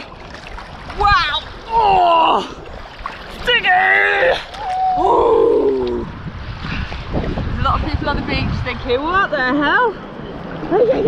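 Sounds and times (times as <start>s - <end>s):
seawater sloshing and lapping: 0.0s - 8.6s
wind rumble on microphone: 4.5s - 11.0s.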